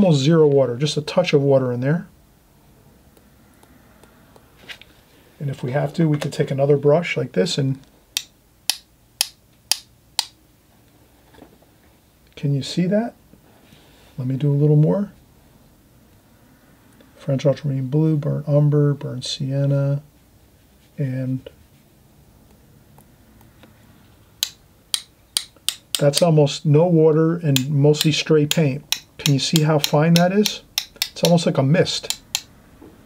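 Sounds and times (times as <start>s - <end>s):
paintbrush tapping clicks: 24.4s - 26.3s, 27.6s - 31.4s, 32.0s - 32.6s.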